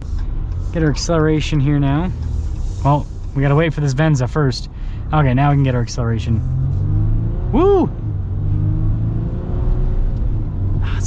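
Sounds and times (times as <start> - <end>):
diesel engine low drone: 0.0 - 11.0.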